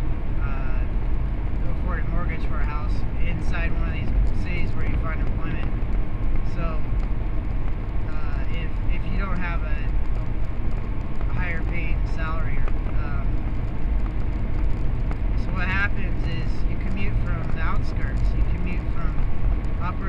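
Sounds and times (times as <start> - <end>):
car road and engine noise: 0.0 - 20.0.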